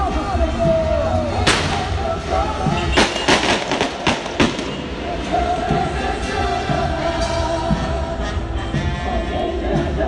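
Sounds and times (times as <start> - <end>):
crowd singing: 0.0 - 10.0
fireworks bangs: 1.4 - 5.2.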